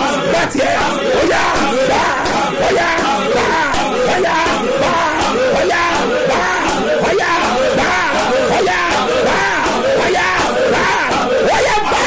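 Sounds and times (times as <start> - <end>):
man shouting prayer: 0.0 - 12.0.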